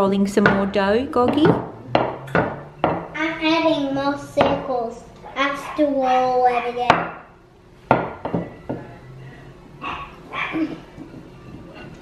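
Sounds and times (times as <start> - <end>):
knocks on wooden tabletop: 0.4 - 3.2, 7.9 - 8.9.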